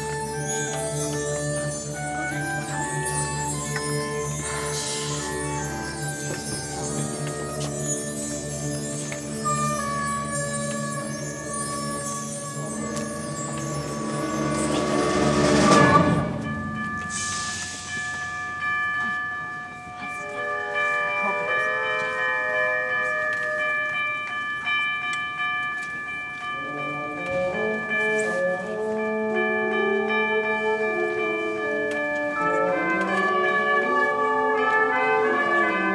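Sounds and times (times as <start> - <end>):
tubular chimes ringing: 0.0 - 31.6
concert band playing: 9.2 - 19.2
cymbal crash: 14.3 - 18.7.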